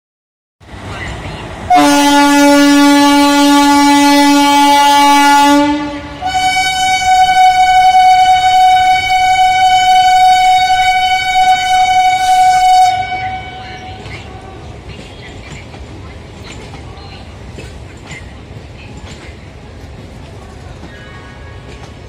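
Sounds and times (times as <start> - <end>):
train horn blasts: 1.7 - 14.0.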